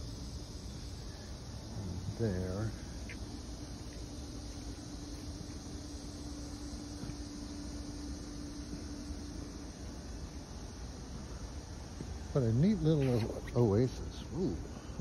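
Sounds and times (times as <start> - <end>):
faint steady hum: 0.0 - 15.0
hiss: 0.0 - 15.0.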